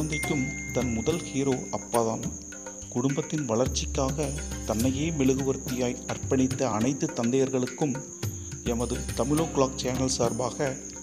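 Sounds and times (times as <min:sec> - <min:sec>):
faint high-pitched tone: 0:00.0 - 0:02.1
narrator speaking: 0:03.0 - 0:08.0, 0:08.7 - 0:10.9.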